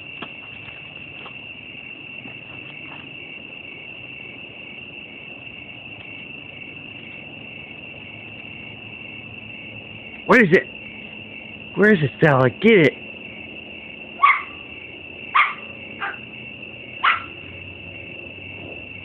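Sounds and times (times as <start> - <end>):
crickets chirping trill: 0.0 - 19.0.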